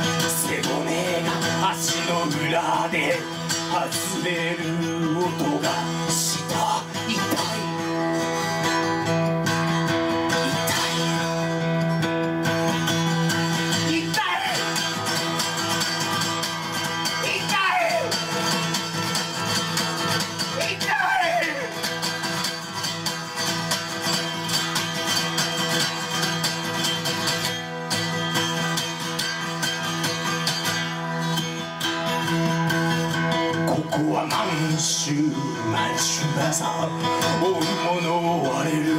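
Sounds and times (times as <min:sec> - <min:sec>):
acoustic guitar strummed fast: 0:00.0 - 0:38.9.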